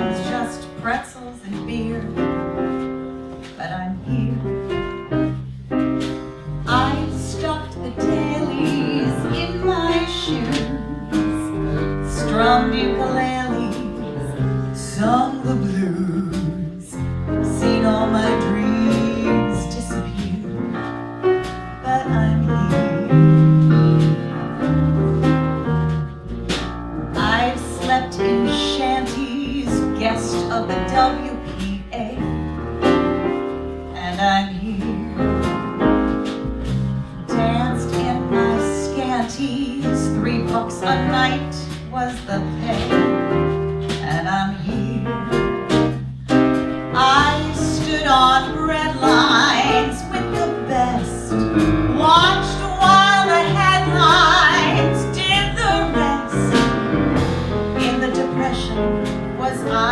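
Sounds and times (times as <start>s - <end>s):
woman singing: 0.0s - 2.7s, 3.5s - 5.3s, 6.6s - 23.8s, 27.2s - 32.5s, 34.0s - 35.6s, 37.2s - 56.8s, 57.8s - 59.9s
bass guitar: 0.0s - 59.9s
piano: 0.0s - 59.9s.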